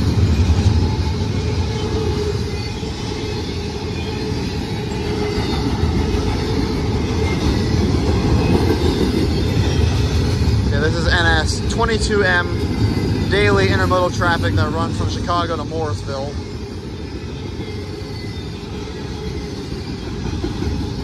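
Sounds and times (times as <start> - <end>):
steel wheels rumbling on rail: 0.0 - 21.0.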